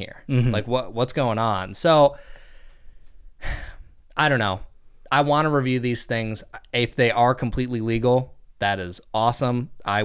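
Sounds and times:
man speaking: 0.0s - 2.2s, 4.1s - 10.0s
man sighing: 3.4s - 4.0s.

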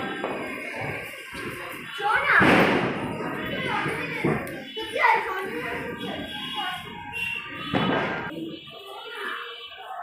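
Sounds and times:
crowd talking: 0.0s - 10.0s
loud thud: 2.3s - 3.3s, 7.6s - 8.3s.

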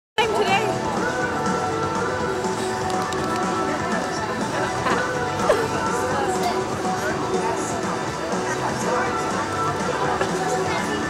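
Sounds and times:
music with held notes: 0.2s - 11.0s.

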